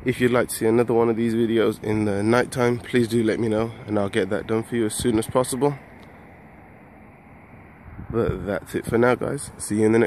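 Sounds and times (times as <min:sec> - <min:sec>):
low outdoor hum: 0:00.0 - 0:10.0.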